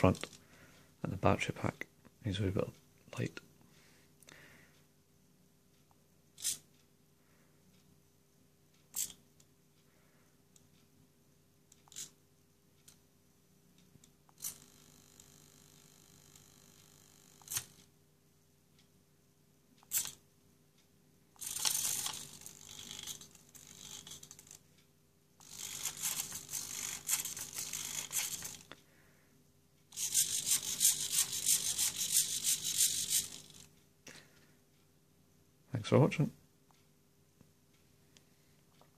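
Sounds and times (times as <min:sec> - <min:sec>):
robot servo movement noise: 0:25.4 - 0:28.6, 0:29.9 - 0:33.7.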